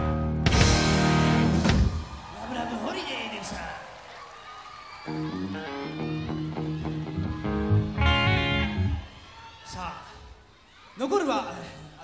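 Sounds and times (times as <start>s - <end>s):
electric guitar chords: 0.0s - 1.8s, 5.1s - 9.0s.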